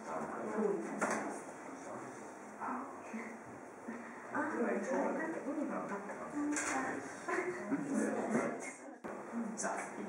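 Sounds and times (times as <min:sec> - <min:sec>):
murmur of people talking: 0:00.0 - 0:10.0.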